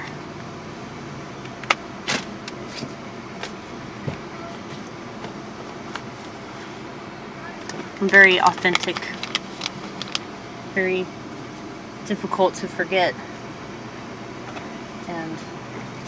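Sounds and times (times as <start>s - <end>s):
in-car background hum: 0.0s - 16.0s.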